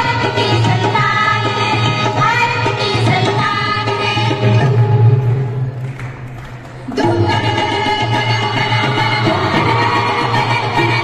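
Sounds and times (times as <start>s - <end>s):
women's group singing: 6.9s - 11.0s.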